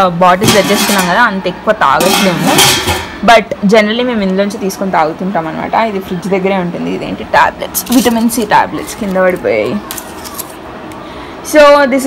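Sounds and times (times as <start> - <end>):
woman's voice: 0.0 - 9.9, 11.4 - 12.0.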